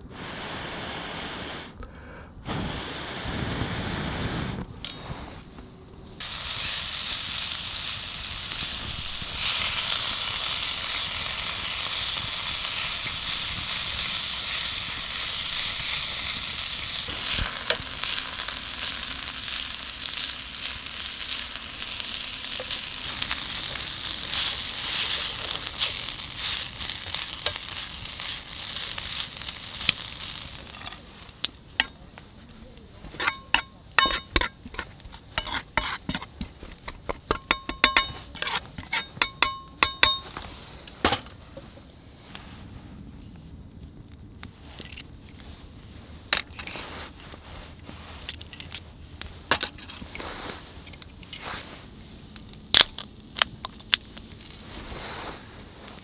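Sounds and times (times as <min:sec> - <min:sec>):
noodles sizzling in a wok: 0:06.2 - 0:40.2, 0:50.1 - 0:56.0
tongs scraping a pan: 0:09.3 - 0:31.0, 0:33.0 - 0:40.3.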